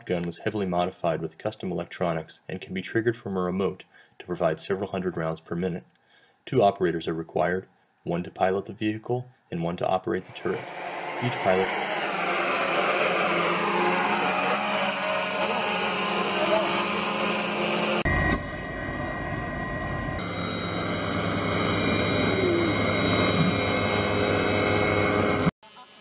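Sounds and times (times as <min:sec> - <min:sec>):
propeller air rushing: 0:10.2 - 0:18.1, 0:20.2 - 0:25.5
drone motors whining: 0:10.2 - 0:26.0.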